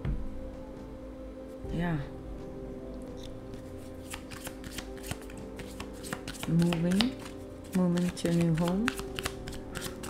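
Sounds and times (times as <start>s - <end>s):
cards being shuffled: 3.6s - 10.0s.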